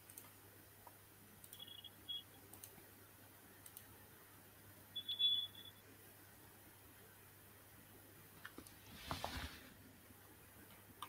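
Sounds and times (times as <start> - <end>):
high-pitched electronic beep: 5.0 - 5.8.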